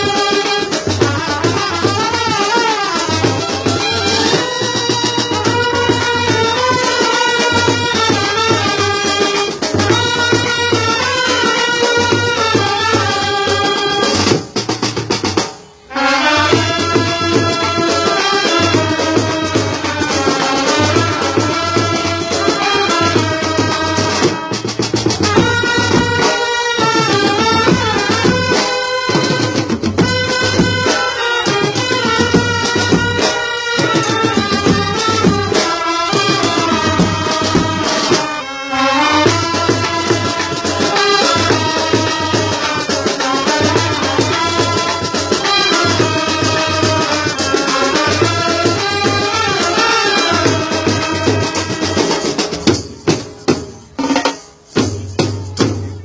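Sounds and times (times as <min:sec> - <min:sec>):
steady drum beat: 0:00.0 - 0:38.5, 0:39.1 - 0:56.0
brass band playing: 0:00.0 - 0:56.0
bass drum: 0:16.5 - 0:38.1.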